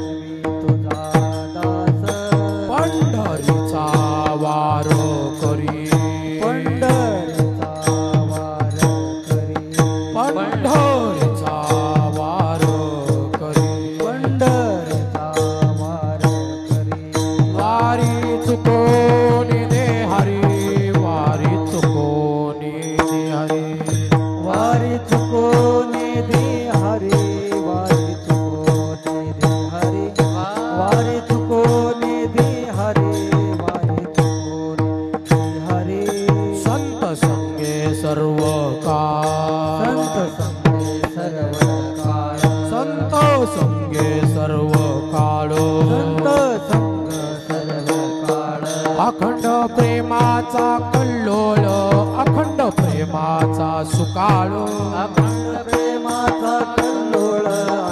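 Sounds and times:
drum beating fast strokes: 0.0s - 22.2s
sustained chanting: 0.0s - 23.8s, 24.4s - 34.7s, 35.4s - 57.9s
hand cymbals struck: 0.0s - 57.9s.

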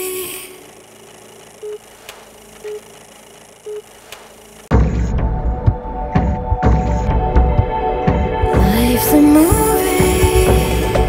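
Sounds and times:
steady hiss: 0.0s - 4.8s
faint clicks: 1.0s - 4.4s
short even beeps: 2.6s - 2.9s, 3.6s - 3.9s.

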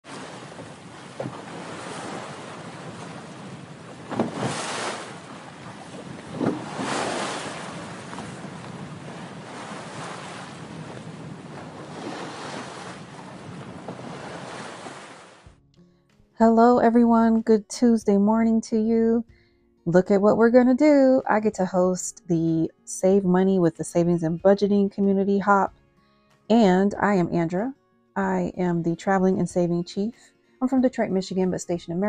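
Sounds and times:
ocean waves washing: 0.0s - 15.5s.

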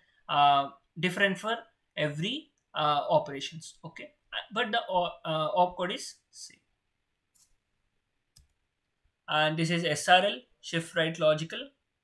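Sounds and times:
computer mouse clicks: 7.3s - 7.6s, 8.3s - 8.6s.

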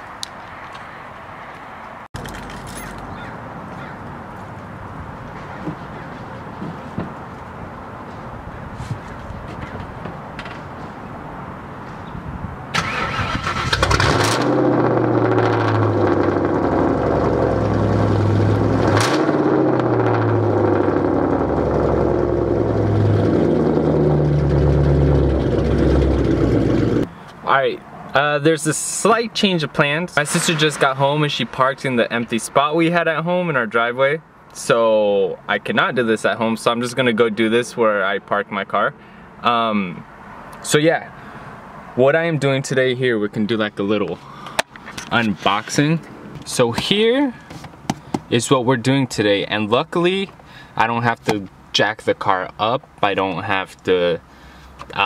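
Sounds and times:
car engine starting and revving: 12.7s - 27.1s.

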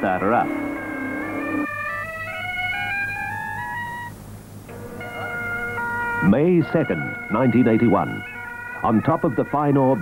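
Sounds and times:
bagpipes being tuned: 0.0s - 4.0s, 4.7s - 10.0s.

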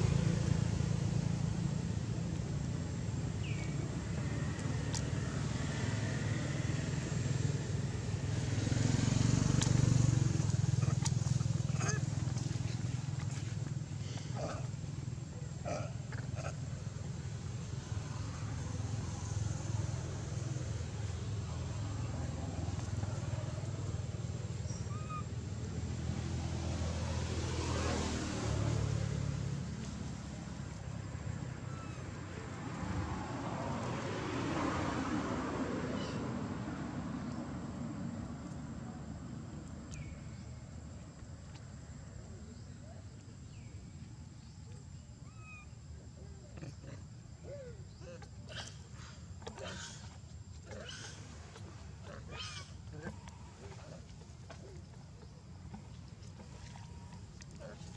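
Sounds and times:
low engine hum: 0.0s - 57.9s
vehicles passing: 0.0s - 57.9s.

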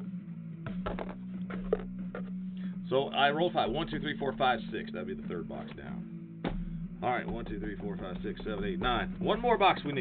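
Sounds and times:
steady low hum: 0.0s - 10.0s
hand tapping cardboard boxes: 0.7s - 2.3s, 6.4s - 10.0s.

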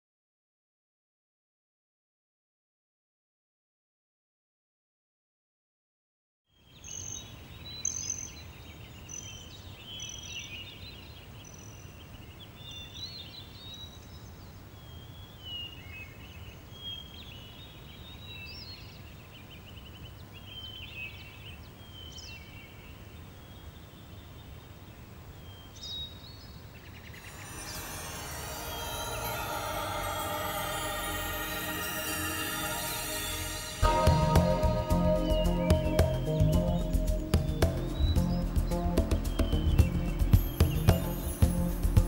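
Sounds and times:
birds chirping and whistling: 27.1s - 41.9s
music: 27.2s - 42.0s.

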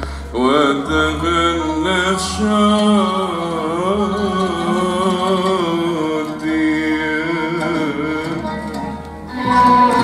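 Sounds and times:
orchestral music: 0.0s - 10.0s
man singing ornamented melody: 0.3s - 8.9s.

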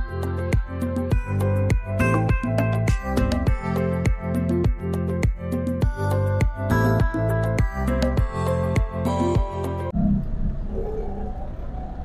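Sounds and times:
faint wavering tones: 9.9s - 12.0s.

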